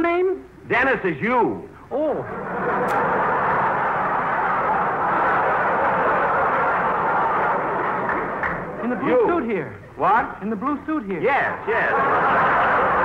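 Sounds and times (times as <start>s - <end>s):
studio audience laughing: 2.3s - 9.4s, 11.7s - 13.0s.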